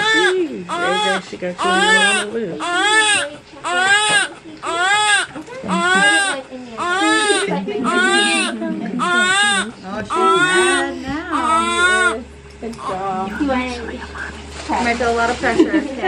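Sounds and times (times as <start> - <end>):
newborn baby crying: 0.0 - 13.1.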